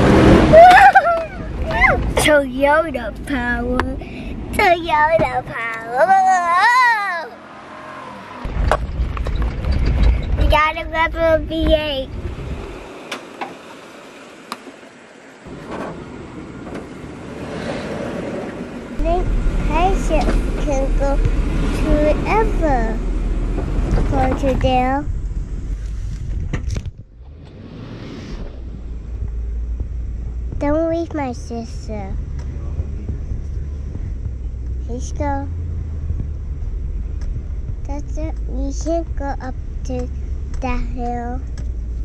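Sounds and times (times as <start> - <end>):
car driving rumble: 0.0 - 42.0
wind buffeting microphone: 8.4 - 12.9, 15.5 - 27.4
wind noise on microphone: 8.4 - 12.9, 16.7 - 42.0.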